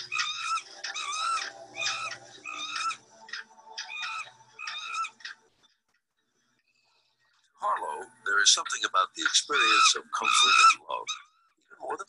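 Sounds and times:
infant monkey distress screams: 0.0 - 3.0, 3.8 - 5.4, 9.3 - 11.5.

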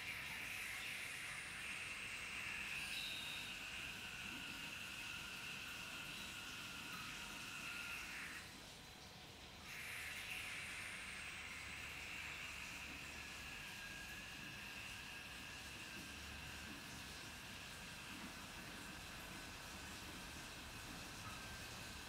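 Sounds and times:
water rushing through pump hissing: 0.0 - 8.6, 9.4 - 22.0.

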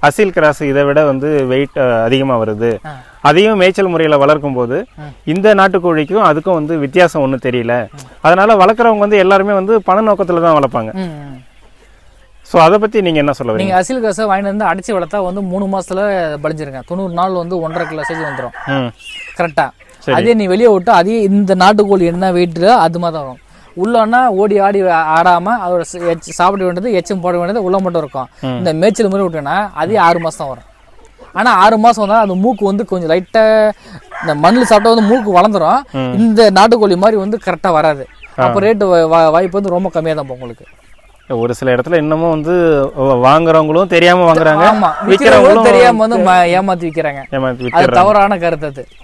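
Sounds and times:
man talking: 0.0 - 11.5, 12.5 - 30.7, 31.3 - 40.7, 41.3 - 49.0
chickens clucking: 0.0 - 49.0
rooster crowing: 17.5 - 19.0, 33.8 - 35.8, 44.4 - 46.6.

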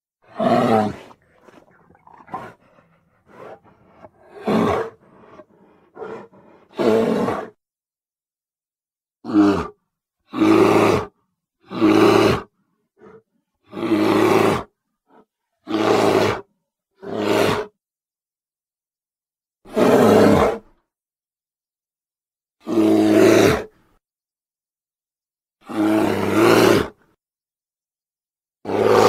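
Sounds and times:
bear roaring and growling: 0.2 - 7.6, 9.2 - 14.7, 15.7 - 17.7, 19.7 - 20.7, 22.6 - 23.7, 25.6 - 27.0, 28.6 - 29.0.

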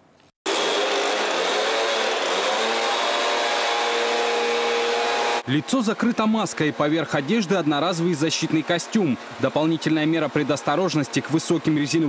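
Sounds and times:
two-stroke engine running: 0.5 - 5.5.

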